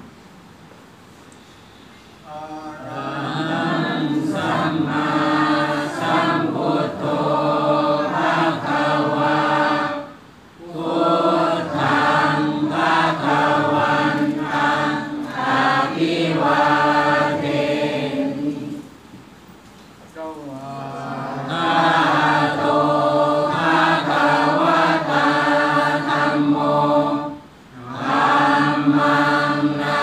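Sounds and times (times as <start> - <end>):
group chanting in unison: 2.2 - 19.0, 20.6 - 30.0.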